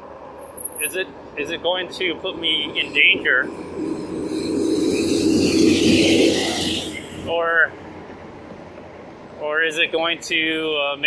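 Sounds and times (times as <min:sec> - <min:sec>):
rushing road noise: 0:00.0 - 0:11.0.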